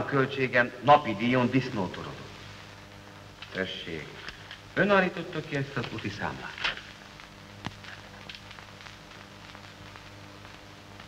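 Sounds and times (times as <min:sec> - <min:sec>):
faint hiss and crackle: 0:00.0 - 0:11.0
low steady hum: 0:00.0 - 0:11.0.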